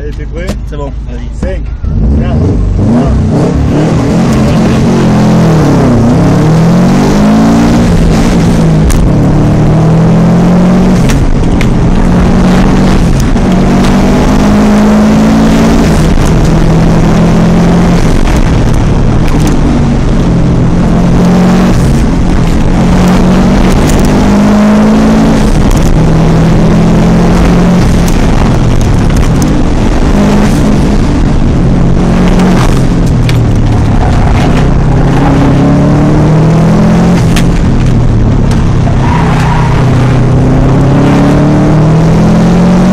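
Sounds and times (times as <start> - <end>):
car engine revving: 0.0 - 42.9.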